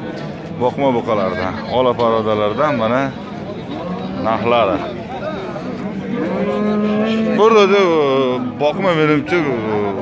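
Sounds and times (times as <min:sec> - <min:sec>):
bull mooing: 0:06.0 - 0:08.5.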